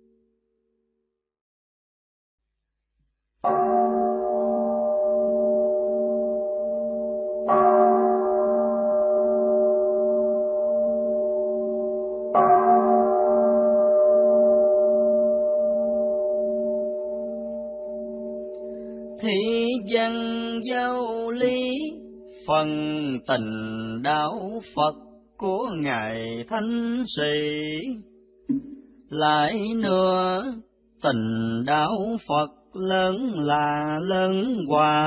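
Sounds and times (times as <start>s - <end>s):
steady hum of bell: 3.5s - 25.4s
man chanting: 19.2s - 28.0s, 29.1s - 35.0s.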